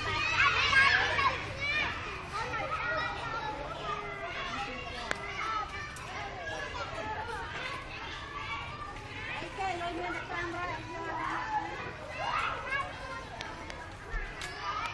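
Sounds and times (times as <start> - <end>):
children calling and chattering: 0.0 - 14.9.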